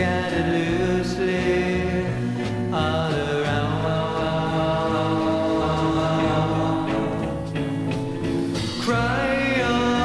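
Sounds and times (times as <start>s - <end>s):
psychedelic rock band droning: 0.0s - 10.0s.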